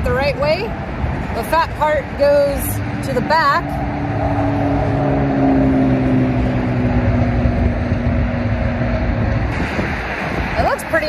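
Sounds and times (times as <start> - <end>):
freeway traffic noise: 0.0 - 11.0
low engine drone: 0.0 - 11.0.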